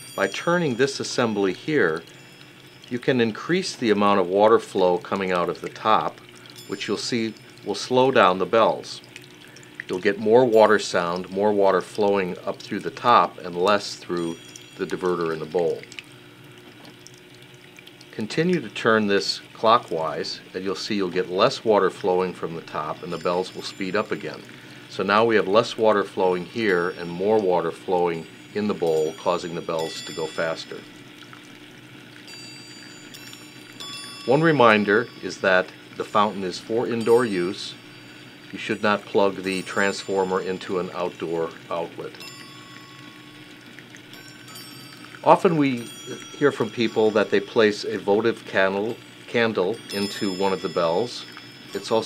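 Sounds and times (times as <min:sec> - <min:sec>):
high bell tone ringing: 0:00.0 - 0:04.0, 0:06.6 - 0:08.0, 0:13.9 - 0:15.9, 0:22.7 - 0:24.4, 0:26.5 - 0:31.1, 0:32.2 - 0:52.0
fountain water splashing: 0:00.0 - 0:52.0
bells knocking: 0:44.1 - 0:47.8.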